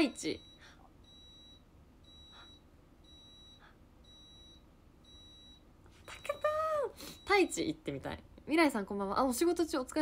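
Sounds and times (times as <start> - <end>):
electronic alarm beeping: 0.0 - 7.8.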